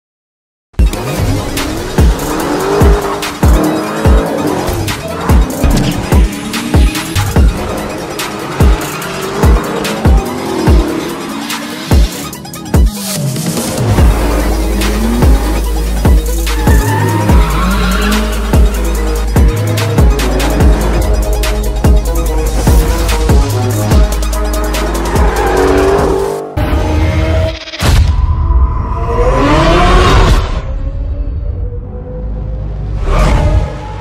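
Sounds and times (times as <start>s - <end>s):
car engine revving: 0.9s - 27.7s
trailer music bass hits: 12.7s - 31.0s
tyres squealing: 16.2s - 18.9s.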